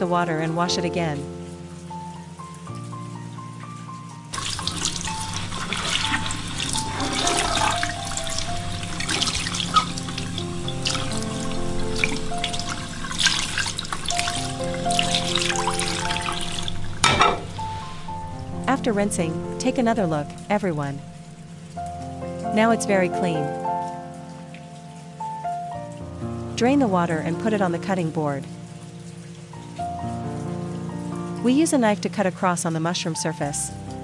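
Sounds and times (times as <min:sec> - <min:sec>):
slow background music: 0:00.0 - 0:34.0.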